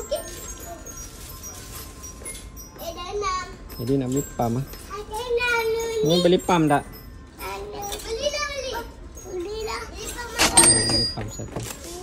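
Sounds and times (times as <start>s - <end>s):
children talking: 0.0s - 12.0s
faint background music: 0.0s - 12.0s.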